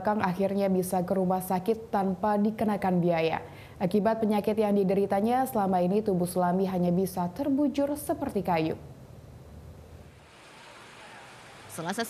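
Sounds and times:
steady hiss: 0:09.2 - 0:12.0.

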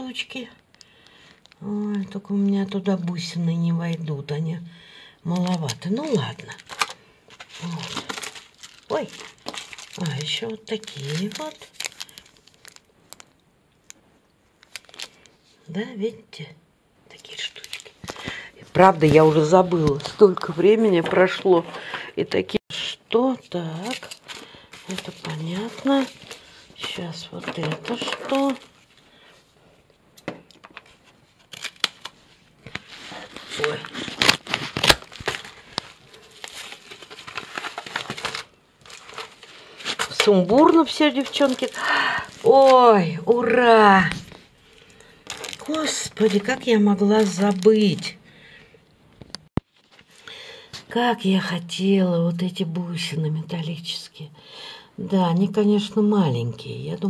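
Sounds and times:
plastic zip bag crinkling: 0:05.3 - 0:13.4, 0:14.6 - 0:15.4, 0:17.5 - 0:20.6, 0:23.7 - 0:29.0, 0:30.5 - 0:48.2.

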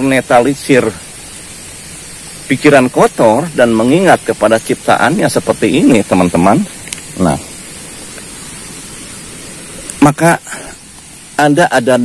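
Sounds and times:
flowing water rushing: 0:00.0 - 0:12.0.

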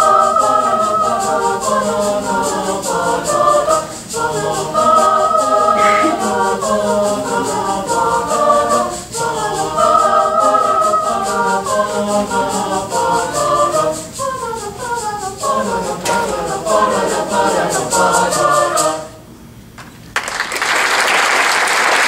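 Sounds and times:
fast ticking beat: 0:00.0 - 0:19.1
mixed choir singing: 0:00.0 - 0:19.2.

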